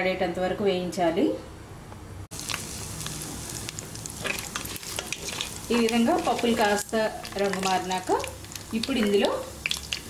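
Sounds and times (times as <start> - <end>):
oil crackles: 2.3 - 10.0
seeds sizzling in hot oil: 2.3 - 10.0
metal spatula stirring: 4.2 - 7.8.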